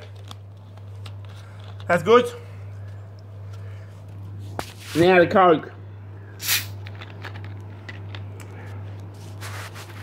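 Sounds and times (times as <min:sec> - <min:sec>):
faint clicks and rustles: 0:00.0 - 0:01.9
steady low hum: 0:00.0 - 0:10.0
short sharp hiss: 0:06.4 - 0:06.8.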